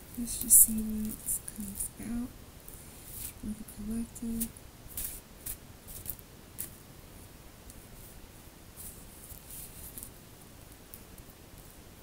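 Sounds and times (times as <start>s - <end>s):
cards being shuffled: 4.4s - 6.8s.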